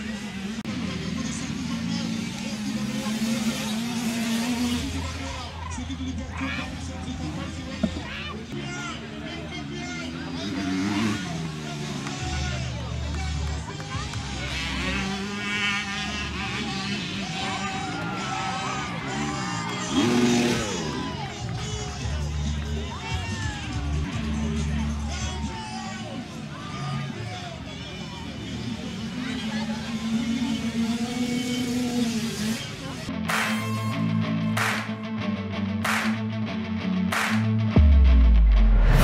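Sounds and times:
motorcycle engine at high revs: 0.0 - 5.4, 10.1 - 21.2, 28.3 - 33.5
crowd voices: 0.0 - 39.0.

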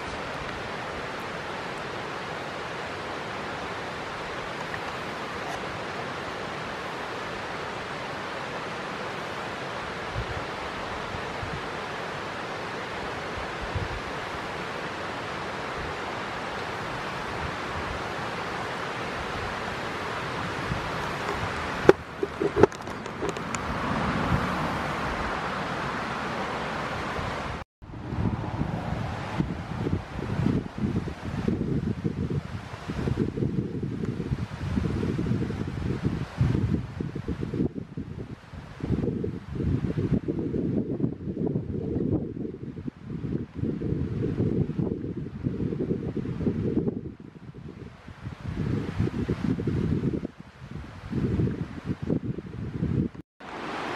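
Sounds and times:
gusty wind on microphone: 0.0 - 8.0, 9.5 - 11.9, 12.9 - 26.1, 26.7 - 53.9
steady rushing hiss: 0.0 - 27.6, 53.4 - 53.9.

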